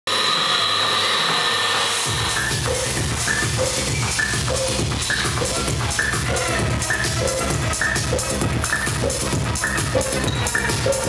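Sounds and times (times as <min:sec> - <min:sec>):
high held synth tones: 0:00.4 - 0:11.0
pounding dance beat and bass: 0:00.4 - 0:11.0.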